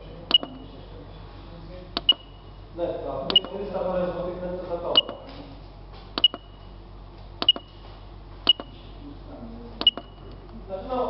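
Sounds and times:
keypad button clicks: 0:00.3 - 0:00.6, 0:02.0 - 0:02.3, 0:03.3 - 0:03.6, 0:05.0 - 0:05.3, 0:06.2 - 0:06.6, 0:07.4 - 0:07.8, 0:08.4 - 0:08.7, 0:09.8 - 0:10.2
short high beeps: 0:03.3 - 0:03.5.

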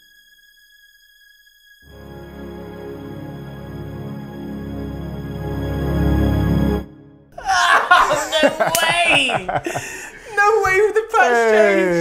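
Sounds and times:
loud synthesizer chord: 0:01.9 - 0:07.3.

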